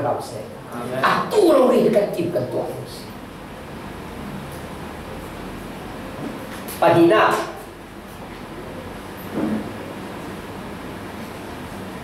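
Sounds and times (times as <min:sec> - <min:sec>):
room noise hiss: 0:00.0 - 0:12.0.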